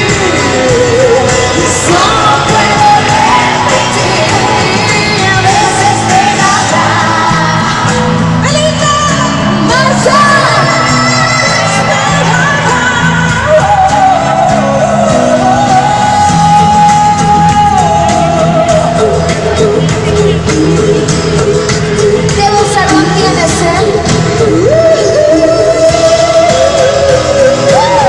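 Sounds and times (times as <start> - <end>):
crowd shouts and yells: 0.0 - 28.0
live pop band with women singing: 0.0 - 28.0.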